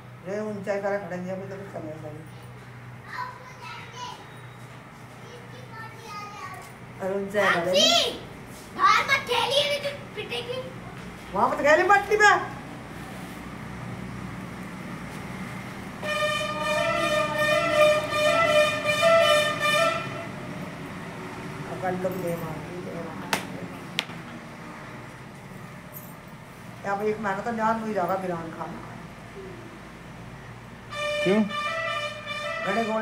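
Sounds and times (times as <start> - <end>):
distant children calling and chattering: 2.2 - 21.8, 28.8 - 33.0
vehicle horn blast: 16.0 - 20.4, 30.9 - 33.0.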